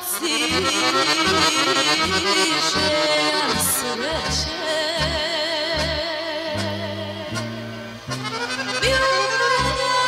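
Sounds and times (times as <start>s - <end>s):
accordion melody: 0.0s - 10.0s.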